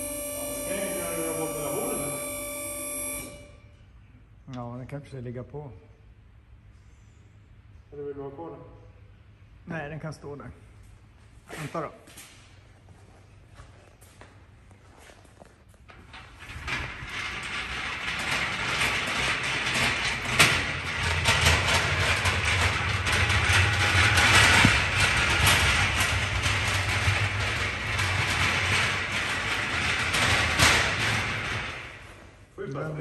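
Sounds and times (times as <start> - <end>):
casters rolling on concrete: 13.2 - 32.4
metal frame rattling: 15.9 - 32.1.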